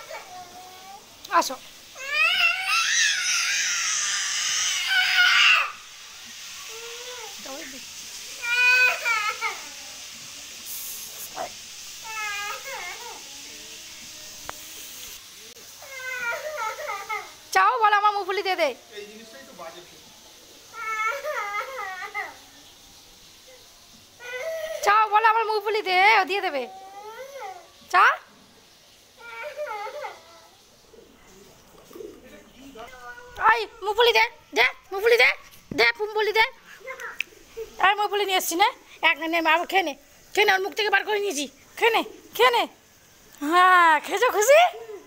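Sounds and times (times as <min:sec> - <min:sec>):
high hiss: 0:00.0 - 0:45.0
pigeons cooing: 0:30.8 - 0:32.6.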